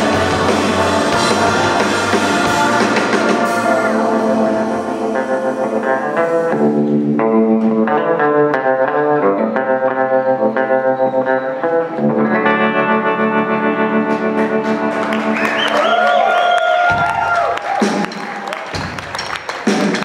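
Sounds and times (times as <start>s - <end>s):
electric guitar picking notes: 0.0s - 15.7s.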